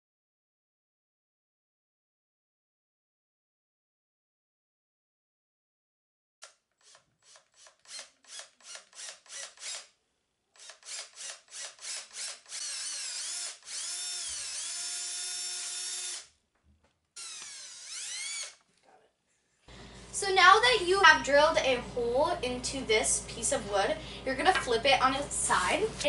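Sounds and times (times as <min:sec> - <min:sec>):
cordless drill boring into wood: 0:06.8 - 0:09.9, 0:10.6 - 0:16.3, 0:17.2 - 0:18.7.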